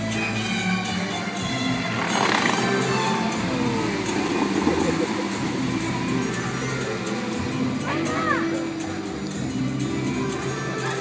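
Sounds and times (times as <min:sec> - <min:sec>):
open-air crowd noise: 0:00.0 - 0:11.0
song over loudspeakers: 0:00.0 - 0:11.0
rush of noise: 0:01.8 - 0:07.8.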